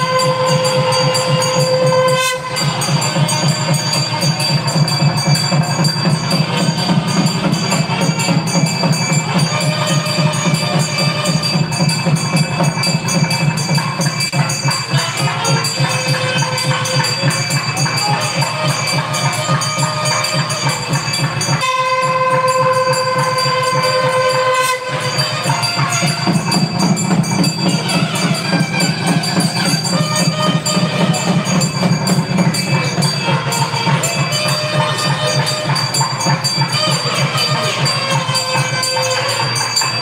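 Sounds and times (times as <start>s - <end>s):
held horn note: 0.0s - 12.0s
fast drumming: 0.0s - 40.0s
high ringing: 0.0s - 40.0s.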